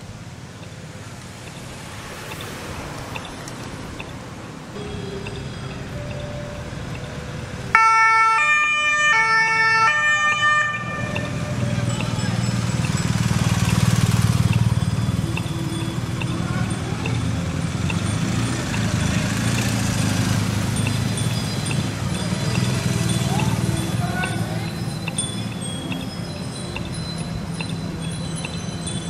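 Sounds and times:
motorcycles and car passing rumble: 0.0s - 29.0s
police two-tone siren: 4.8s - 29.0s.

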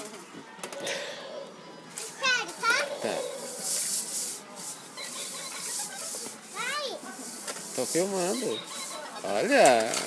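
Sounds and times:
child's voice: 2.2s - 3.5s, 6.5s - 7.1s.

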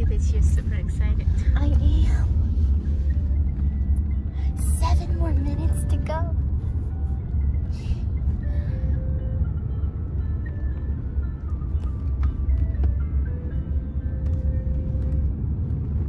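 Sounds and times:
minivan cabin rumble: 0.0s - 16.0s
music playing: 0.0s - 16.0s.

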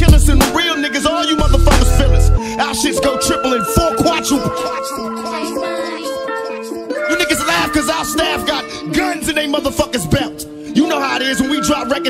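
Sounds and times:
person rapping: 0.0s - 12.0s.

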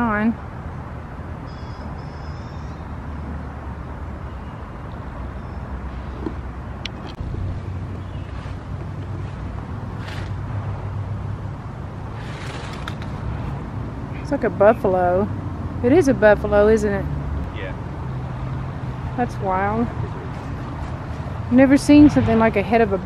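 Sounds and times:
distant road traffic rumble: 0.0s - 23.0s.

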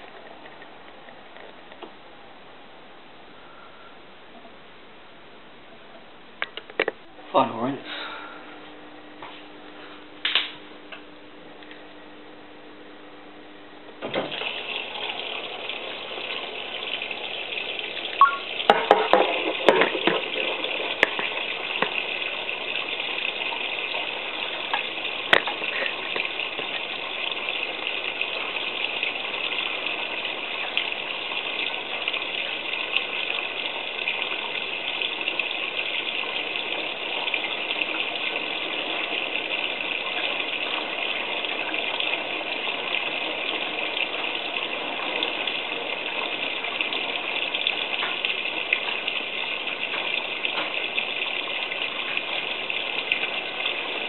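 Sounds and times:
water rushing through washing machine: 14.0s - 54.0s.

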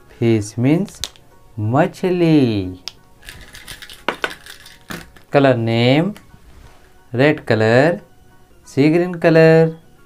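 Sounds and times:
marker pens clattering on paper: 3.2s - 5.3s.

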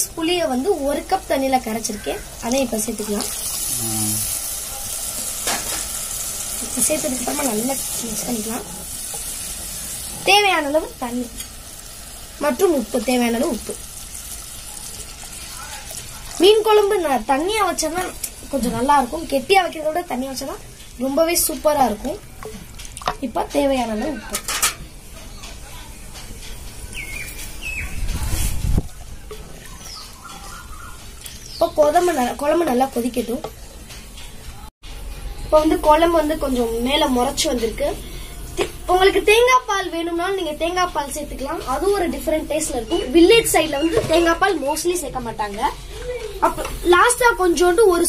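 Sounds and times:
gravy sizzling and bubbling: 0.0s - 48.0s
small bird chirping: 25.2s - 28.2s, 28.9s - 31.9s.

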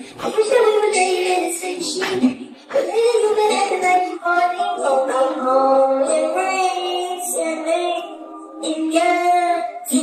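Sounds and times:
high singing voice: 0.0s - 10.0s.

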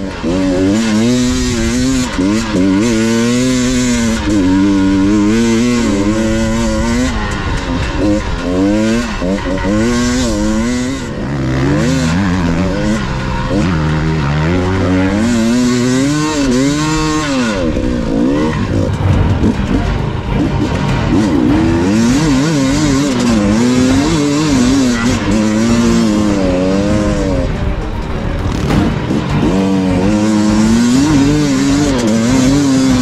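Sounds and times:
dirt bike engine revving: 0.0s - 33.0s.

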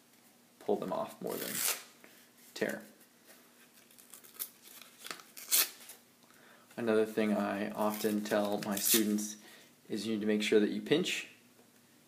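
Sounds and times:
paper ripping: 3.8s - 6.0s.

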